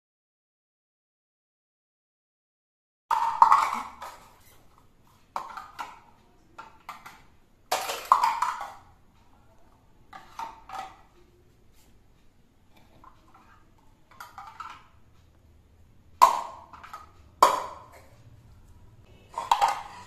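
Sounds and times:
plastic cubes clattering on floor: 3.1s - 8.9s, 10.1s - 11.1s, 14.1s - 15.0s, 16.2s - 18.1s, 19.3s - 20.0s.

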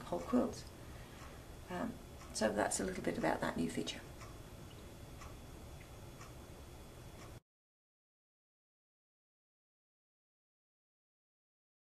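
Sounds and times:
faint ticking: 0.0s - 7.4s
low room noise: 0.0s - 7.4s.

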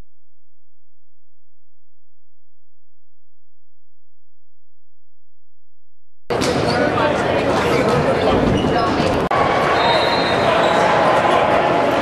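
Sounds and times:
players' voices: 6.3s - 12.0s.

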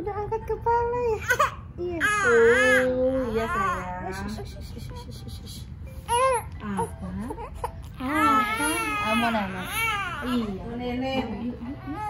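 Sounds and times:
infant crying: 7.5s - 10.5s.

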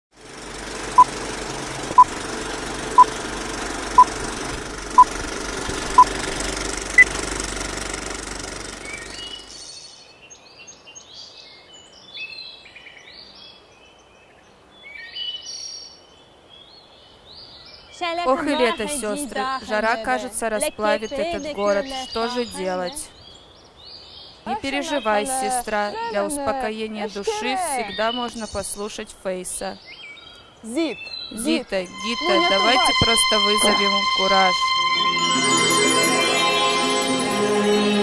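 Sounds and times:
birds chirping: 17.8s - 28.9s, 29.8s - 32.6s
low hum: 31.7s - 37.4s
countdown beeps: 31.9s - 37.0s.

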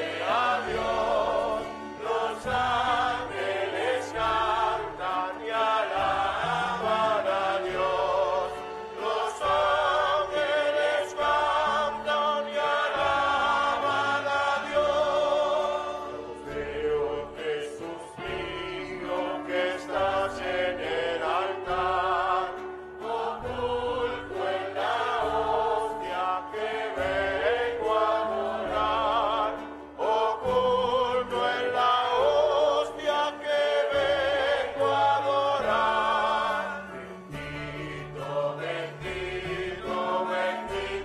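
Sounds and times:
choir singing slowly: 0.0s - 41.0s
slow choral chant: 0.0s - 41.0s.

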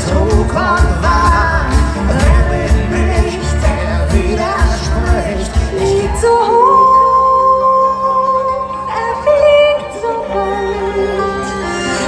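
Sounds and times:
folk metal band playing: 0.0s - 7.0s.

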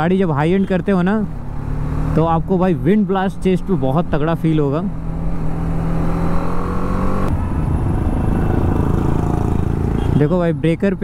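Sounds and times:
wind: 0.0s - 11.0s
motorcycle engine revving: 1.3s - 10.1s.

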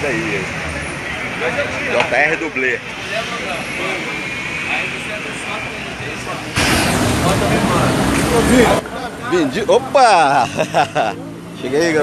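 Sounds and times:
street traffic: 0.0s - 12.0s
loud rushing noise: 2.8s - 8.8s.

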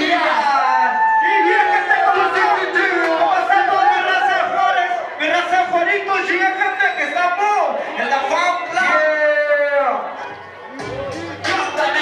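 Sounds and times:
men shouting into microphones: 0.0s - 10.2s
crowd yelling: 0.0s - 12.0s.

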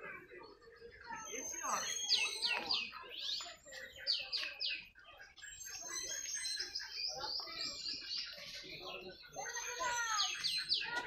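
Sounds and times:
soft bird chirps: 0.0s - 11.0s.

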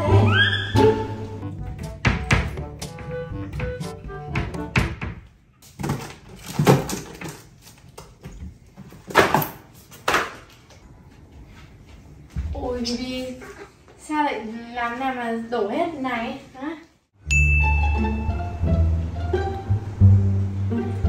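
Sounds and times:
light background music: 0.0s - 5.1s, 17.3s - 21.0s
monkey knocking on wooden shelves: 1.8s - 5.3s.

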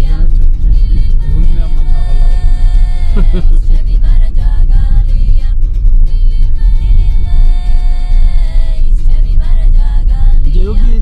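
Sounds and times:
music with wavering melody: 0.0s - 11.0s.

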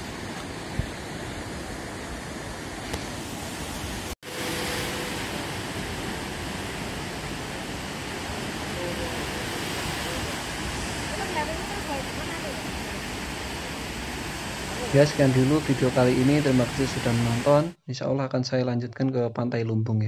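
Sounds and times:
ocean surf breaking: 0.0s - 17.8s.

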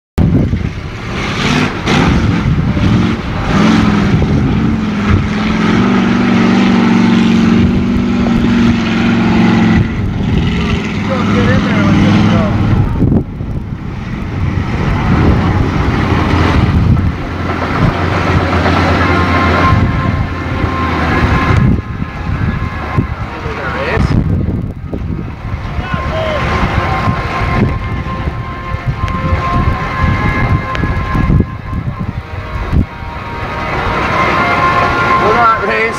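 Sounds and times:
low steady engine note: 0.2s - 35.9s
truck engine revving high: 0.2s - 35.9s.

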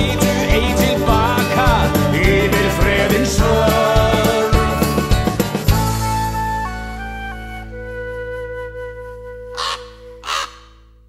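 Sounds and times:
raven cawing: 9.5s - 10.9s.

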